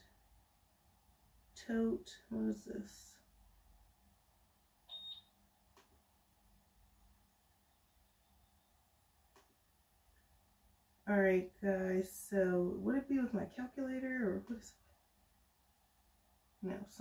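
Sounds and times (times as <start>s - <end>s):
short high beep: 4.9s - 5.3s.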